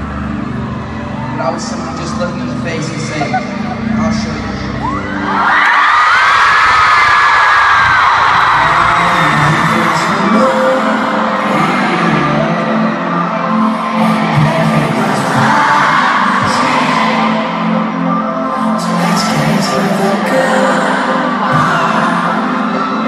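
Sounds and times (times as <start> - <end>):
song intro over loudspeakers: 0.0 - 6.4, 7.2 - 23.0
fans screaming and cheering: 0.0 - 23.0.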